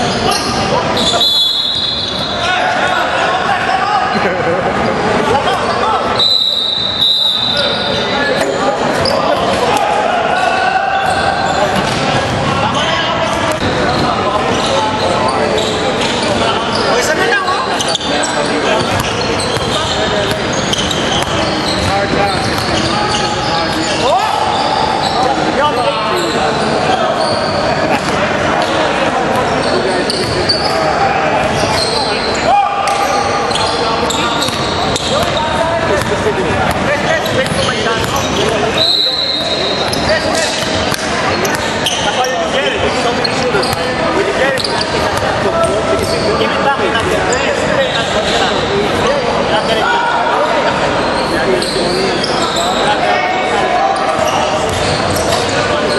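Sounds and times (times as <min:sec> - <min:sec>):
players' voices echoing: 0:00.0 - 0:55.9.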